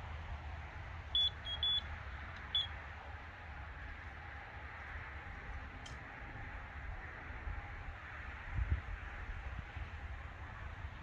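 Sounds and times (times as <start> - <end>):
electronic bite alarm beeping: 1.2 - 1.8.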